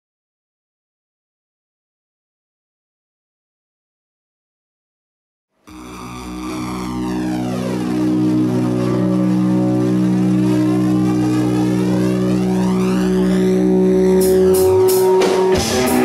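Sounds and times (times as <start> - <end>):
low synthesizer chord with flanger: 5.7 - 16.0.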